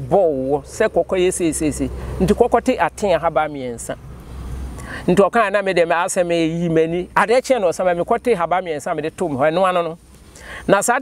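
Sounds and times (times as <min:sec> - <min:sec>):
low steady background rumble: 0:00.0 - 0:11.0
person speaking: 0:00.0 - 0:11.0.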